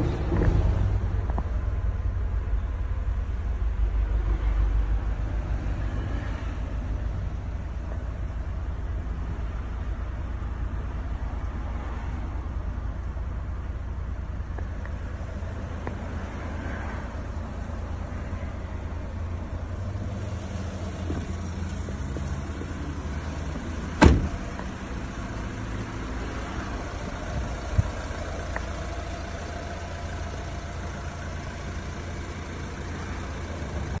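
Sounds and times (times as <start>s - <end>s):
diesel engine idling: 0.0s - 34.0s
van door shutting: 23.8s - 24.6s.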